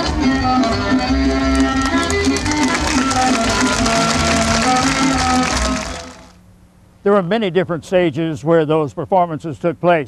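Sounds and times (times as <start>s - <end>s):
band playing folk dance music: 0.0s - 6.4s.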